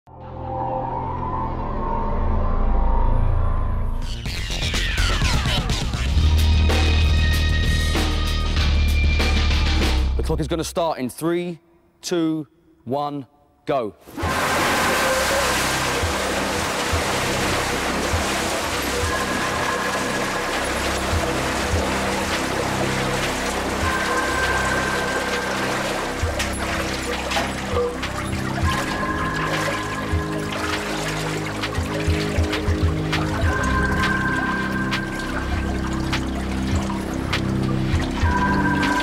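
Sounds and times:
tense music score: 0.1 - 10.8, 14.2 - 39.0
water pouring and splashing: 14.1 - 39.0.

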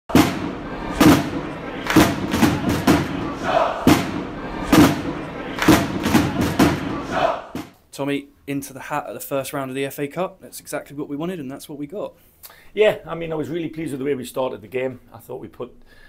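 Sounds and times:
crowd chanting and cheering: 0.1 - 7.8
heavy drum hits: 0.1 - 7.8.

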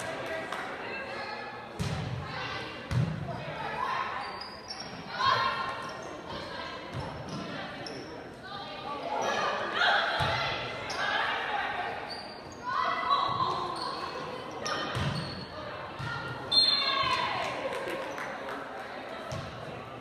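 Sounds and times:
spectators' voices: 0.0 - 20.0.

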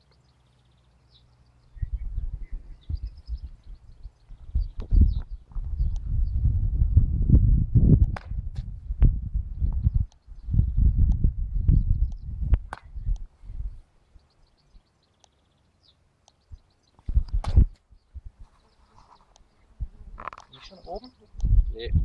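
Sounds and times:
wind buffeting microphone: 1.7 - 13.9, 16.5 - 18.5, 19.7 - 22.0
sharp clicks: 12.0 - 13.3, 15.2 - 15.4.

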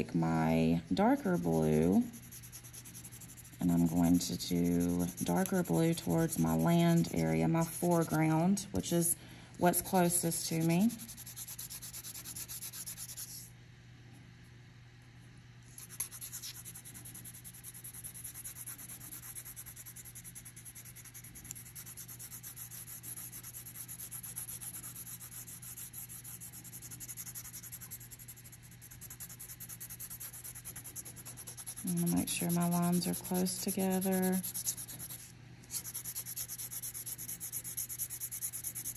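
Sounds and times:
colored pencil scratching on paper: 1.0 - 8.4, 9.9 - 13.5, 15.8 - 38.9.

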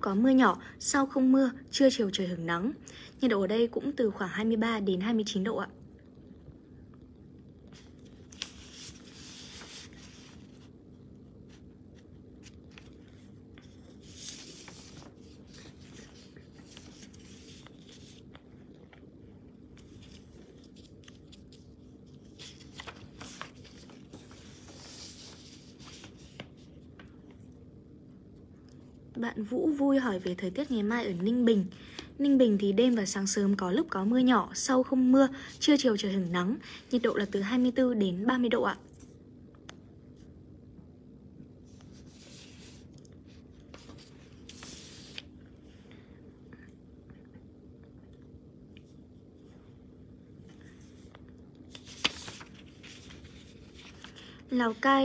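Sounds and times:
low room hum: 0.0 - 55.0
soft handling rubbing: 7.6 - 27.4.

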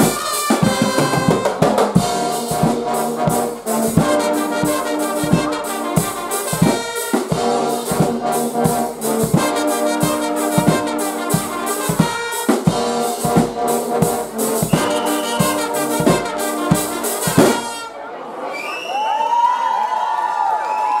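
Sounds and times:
drums striking a steady beat: 0.0 - 17.9
brass band playing loudly: 0.0 - 18.1
crowd cheering and shouting: 17.9 - 21.0.

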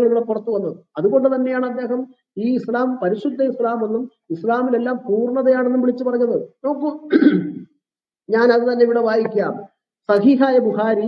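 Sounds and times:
man speaking: 0.0 - 11.0
throat clearing: 7.1 - 7.8.

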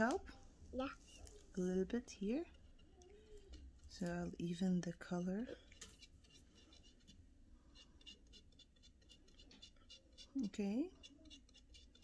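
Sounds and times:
paintbrush scratching on wood: 1.0 - 12.0.

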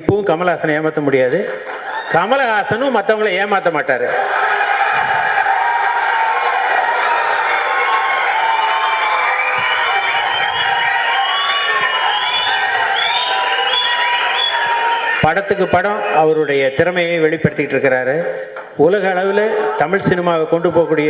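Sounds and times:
audience cheering and shouting: 4.0 - 16.9, 18.9 - 21.0
high-pitched whistles: 8.5 - 15.2.

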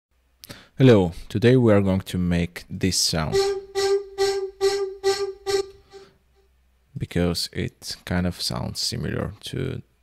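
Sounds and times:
vocal-like synth repeating note: 3.3 - 6.1.

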